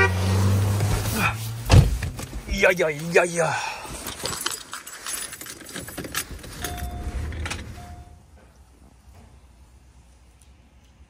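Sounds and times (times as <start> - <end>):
rustling handling noise: 1.4 - 6.9.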